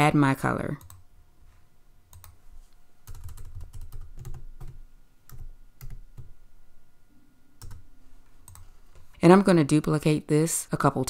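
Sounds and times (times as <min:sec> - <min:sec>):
computer keyboard typing: 0:00.8 - 0:01.0, 0:02.1 - 0:02.4, 0:03.0 - 0:06.4, 0:07.6 - 0:07.8, 0:08.4 - 0:09.0.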